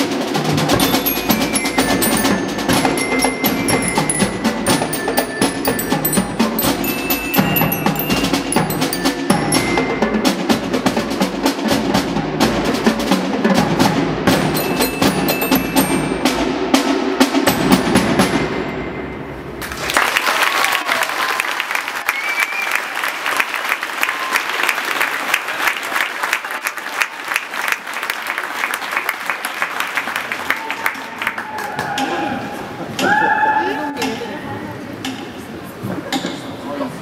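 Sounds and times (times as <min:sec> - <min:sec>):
snare drums: 0:00.0 - 0:18.8
tenor drums: 0:00.0 - 0:19.6
marching glockenspiel notes: 0:00.5 - 0:12.0, 0:13.9 - 0:19.2.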